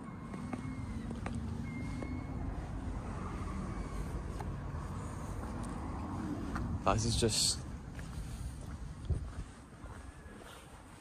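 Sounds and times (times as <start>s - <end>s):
steady low rumble: 0.0s - 10.4s.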